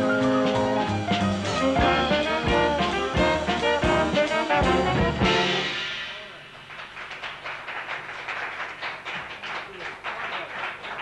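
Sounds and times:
audience applauding: 6.2 - 11.0.

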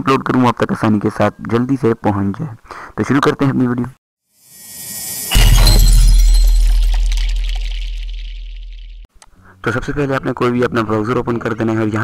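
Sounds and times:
glassy shattering shimmer: 4.4 - 9.0
sudden impact: 4.5 - 9.0
deep bass boom: 5.3 - 9.0.

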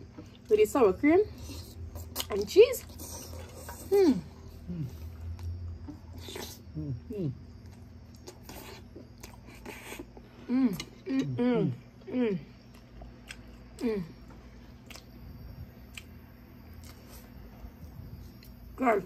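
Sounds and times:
chewing: 1.3 - 4.1, 7.6 - 11.3, 12.6 - 15.2, 15.8 - 17.4
person humming mm: 3.8 - 5.0, 10.4 - 12.5, 13.8 - 14.2.

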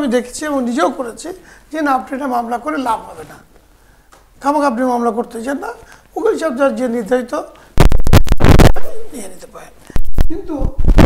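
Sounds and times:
rubbing on lapel microphone: 9.9 - 11.0.

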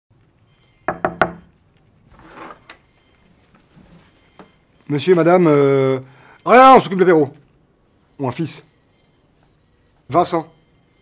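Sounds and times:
knocks on wooden door: 0.9 - 1.5.

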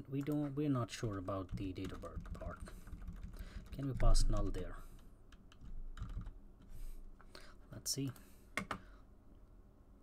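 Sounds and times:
computer keyboard typing: 0.2 - 4.7, 5.3 - 6.4.

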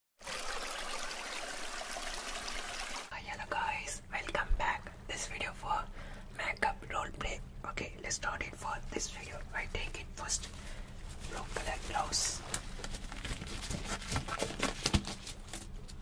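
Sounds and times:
man whispering: 3.1 - 10.5, 11.2 - 12.5.

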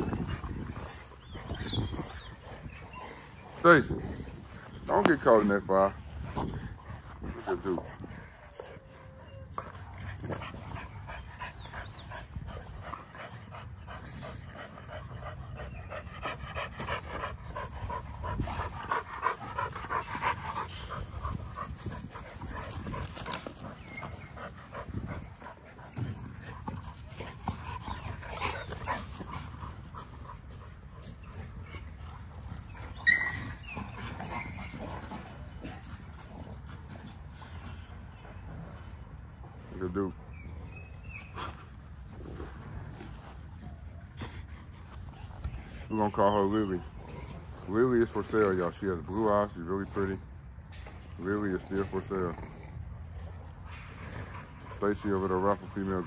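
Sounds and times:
dogs panting: 0.0 - 56.0
dog yelping: 32.7 - 35.4.

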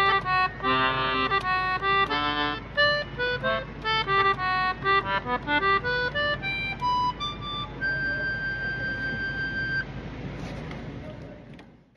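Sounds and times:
concertina high note: 6.8 - 9.8.

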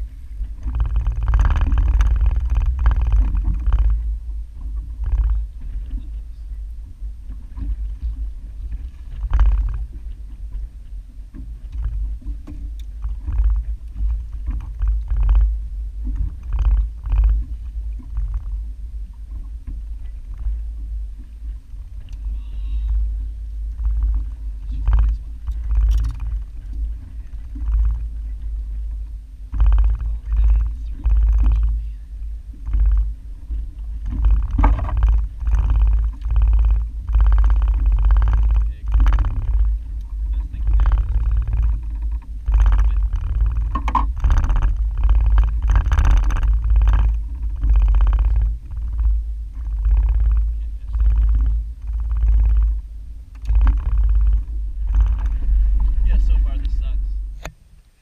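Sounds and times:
wind rumble on microphone: 0.0 - 58.0
man talking: 56.0 - 57.2.

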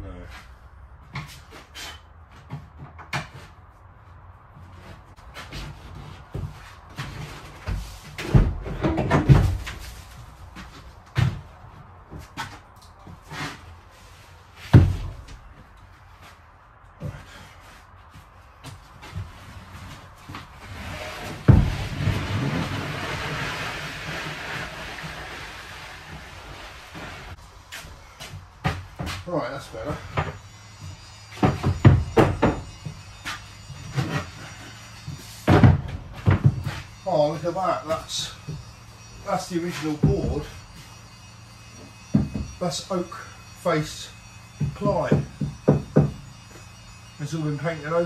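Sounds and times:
wood scraping: 4.6 - 48.0
wooden boards banging and knocking: 4.7 - 13.6, 14.6 - 15.6, 18.6 - 40.9, 41.7 - 43.3, 44.4 - 46.7.

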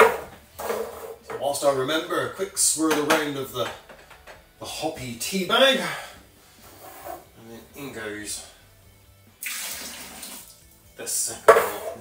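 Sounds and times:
hot water pouring into bucket: 9.4 - 10.6.

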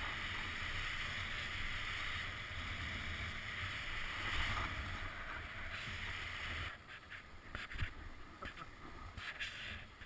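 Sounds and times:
skis hissing on snow: 0.0 - 7.9, 9.2 - 10.0
wind rumbling on microphone: 0.0 - 10.0.

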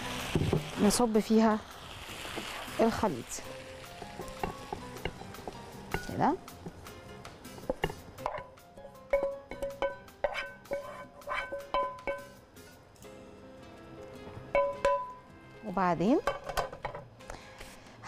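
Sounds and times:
soft background music: 0.0 - 18.0
spatula knocking on frying pan: 3.9 - 12.4, 14.5 - 15.2.

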